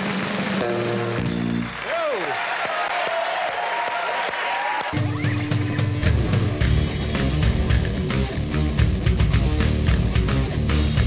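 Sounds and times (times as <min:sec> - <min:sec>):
audience applauding: 0:00.0 - 0:05.9
voices cheering: 0:00.0 - 0:06.1.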